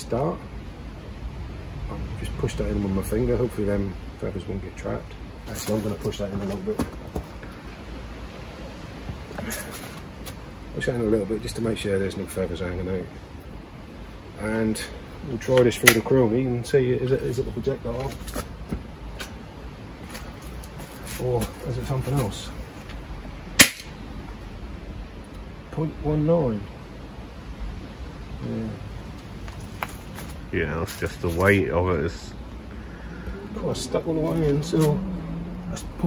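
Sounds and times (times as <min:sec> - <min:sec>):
low rumble with hiss: 0:00.0 - 0:36.0
air pistol shot crack: 0:23.6 - 0:23.9.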